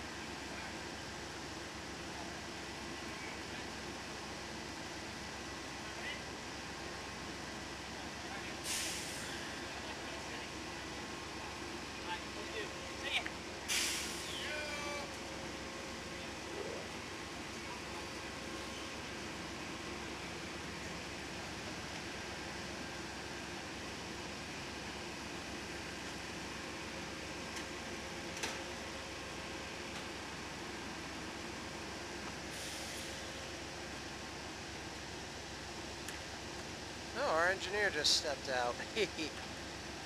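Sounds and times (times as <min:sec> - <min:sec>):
train idling hum: 0:00.0 - 0:40.0
brief hiss: 0:08.6 - 0:09.4, 0:13.7 - 0:14.4, 0:32.5 - 0:33.2.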